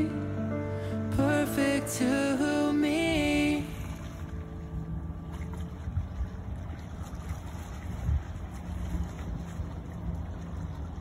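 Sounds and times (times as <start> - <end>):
rippling water: 0.0 - 11.0
wind buffeting microphone: 3.2 - 11.0.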